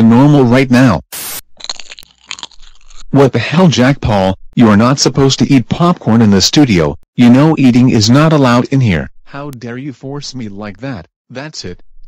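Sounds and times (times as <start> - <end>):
popcorn crunching and chewing: 1.4 - 3.1.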